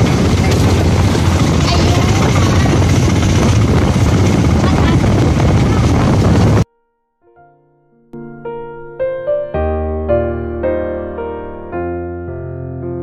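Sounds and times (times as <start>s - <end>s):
small engine running: 0.0s - 6.6s
wind on microphone: 0.0s - 6.7s.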